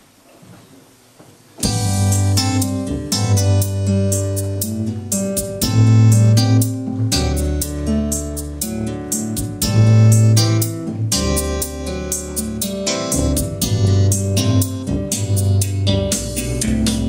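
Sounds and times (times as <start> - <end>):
electronic keyboard notes: 1.6 - 17.0
held bass line: 1.6 - 17.0.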